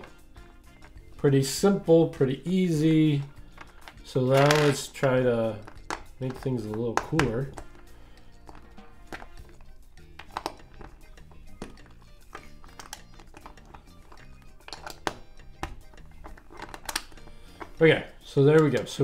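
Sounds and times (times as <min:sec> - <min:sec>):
quiet background music: 0:00.0 - 0:19.0
plastic bricks clicking: 0:03.5 - 0:07.8, 0:08.4 - 0:17.7.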